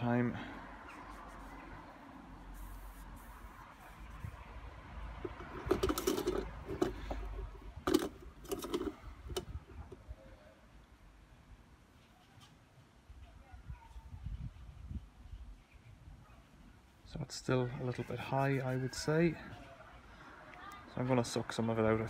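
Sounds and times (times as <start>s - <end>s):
dipstick clicks and scrapes: 5.2s - 10.0s.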